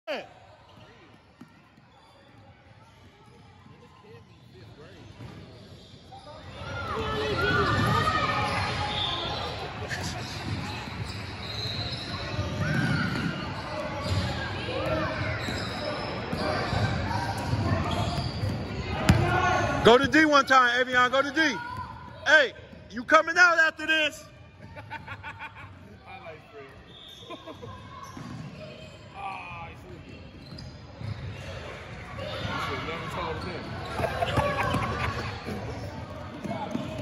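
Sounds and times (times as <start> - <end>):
basketball bouncing on court: 16.3 - 19.6, 36.3 - 37.0
voices in background: 25.8 - 37.0.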